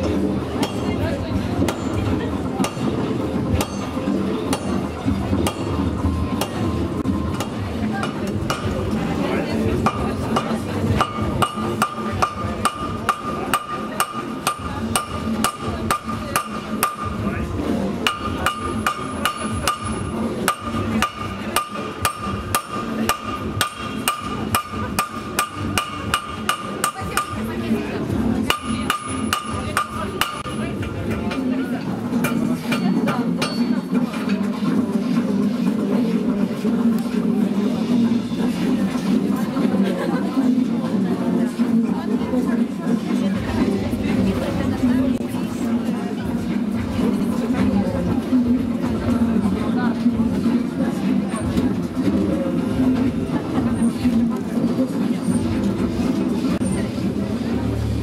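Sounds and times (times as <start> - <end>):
crowd murmuring: 0.0 - 58.0
hammer striking steel on anvil: 0.6 - 0.9, 2.6 - 9.0, 9.8 - 17.3, 18.0 - 27.5, 28.4 - 31.6, 32.2 - 34.4.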